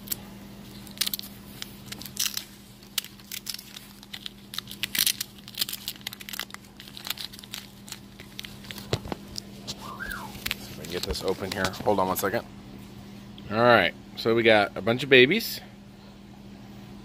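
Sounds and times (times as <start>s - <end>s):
cloth bag rustling and crinkling: 0.7s - 12.2s.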